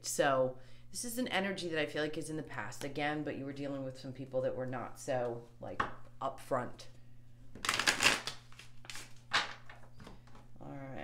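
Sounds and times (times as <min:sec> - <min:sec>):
cards snapping: 0:07.6 - 0:09.6
cards shuffling: 0:07.6 - 0:09.9.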